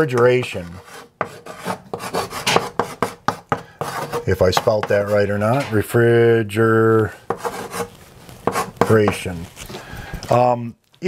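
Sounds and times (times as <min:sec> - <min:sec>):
chalk scratching on a blackboard: 0:00.2 - 0:05.8, 0:07.2 - 0:09.6.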